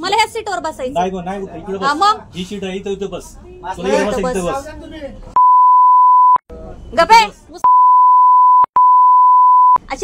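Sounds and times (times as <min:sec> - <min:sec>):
censor bleep: 0:05.4 - 0:06.4, 0:07.6 - 0:09.8.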